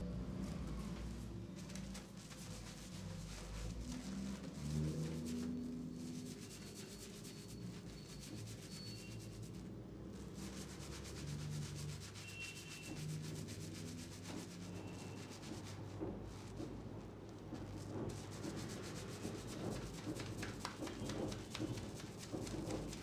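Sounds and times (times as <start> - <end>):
fingers scrubbing lathered hair: 0.2 - 23.0.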